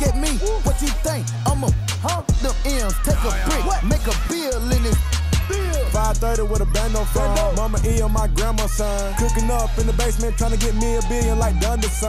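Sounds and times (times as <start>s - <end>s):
deep bass line: 0.0s - 12.0s
hi-hat ticks: 0.0s - 12.0s
rapping over a beat: 0.0s - 12.0s.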